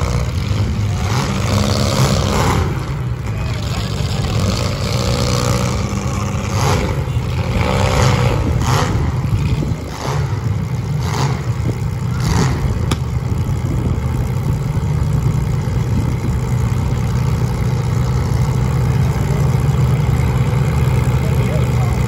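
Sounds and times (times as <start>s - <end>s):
car engines revving: 0.0s - 22.0s.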